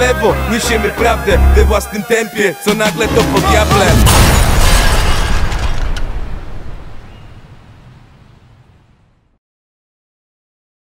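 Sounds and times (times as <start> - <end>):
low rumble of explosion: 3.9 - 9.2.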